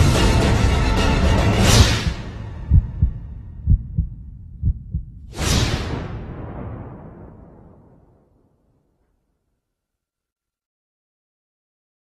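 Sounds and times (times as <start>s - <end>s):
deep heartbeat-like thumps: 1.8s - 5.4s
whoosh-and-boom hit: 5.2s - 7.8s.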